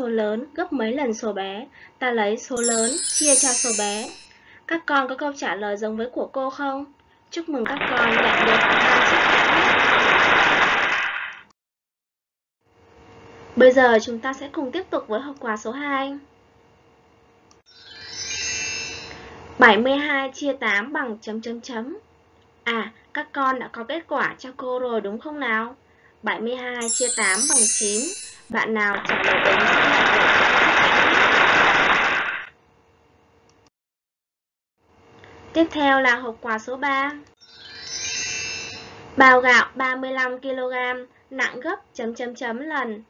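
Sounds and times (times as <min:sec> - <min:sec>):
applause: 0:07.8 - 0:11.4, 0:29.0 - 0:32.5
crowd applause: 0:08.2 - 0:11.2.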